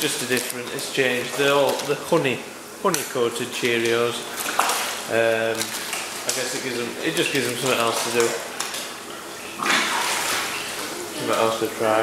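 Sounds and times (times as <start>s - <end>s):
fish splashing at water surface: 2.9s - 11.4s.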